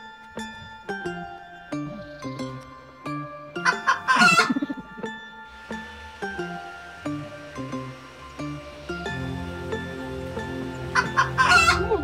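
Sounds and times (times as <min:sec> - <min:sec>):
soft background music: 0:00.0 - 0:12.0
loud rasping crow: 0:10.9 - 0:12.0.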